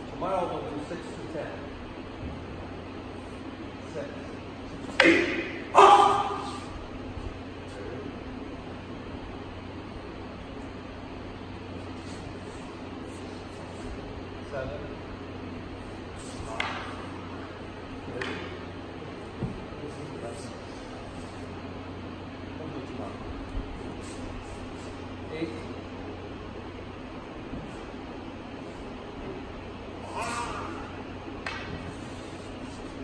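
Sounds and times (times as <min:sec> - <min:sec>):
low room hum: 0:00.0 - 0:33.0
wooden staffs clacking: 0:04.8 - 0:06.5, 0:16.3 - 0:17.2.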